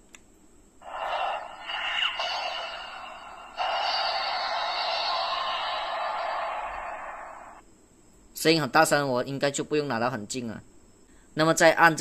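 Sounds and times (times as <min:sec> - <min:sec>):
toy charging sound effect: 0:00.8 - 0:07.6.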